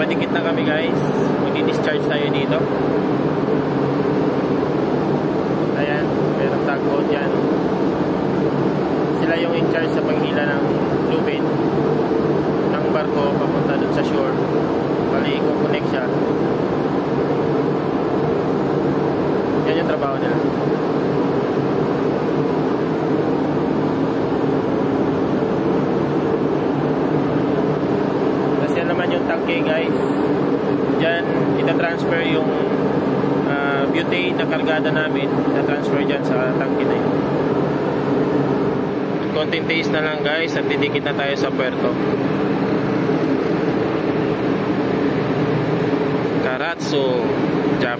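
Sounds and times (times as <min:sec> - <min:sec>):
man talking: 0:00.0 - 0:02.6, 0:05.8 - 0:07.4, 0:09.2 - 0:11.5, 0:12.7 - 0:14.4, 0:15.1 - 0:16.2, 0:19.6 - 0:20.4, 0:28.6 - 0:30.2, 0:30.9 - 0:32.8, 0:33.4 - 0:37.1, 0:39.2 - 0:42.0, 0:46.4 - 0:47.9
ship machinery hum: 0:00.0 - 0:47.9.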